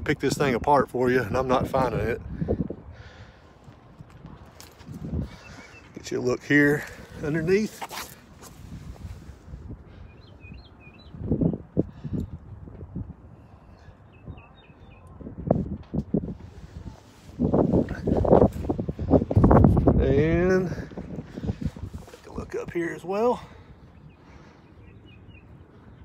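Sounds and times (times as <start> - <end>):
low rumbling microphone noise: 0.0 - 25.7
small birds chirping: 5.0 - 8.3, 9.1 - 12.4, 13.4 - 15.3, 20.5 - 26.0.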